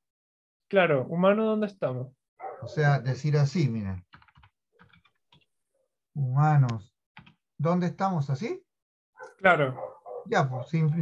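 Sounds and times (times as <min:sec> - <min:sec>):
faint keyboard typing: 0:04.0 - 0:05.5, 0:07.2 - 0:07.4.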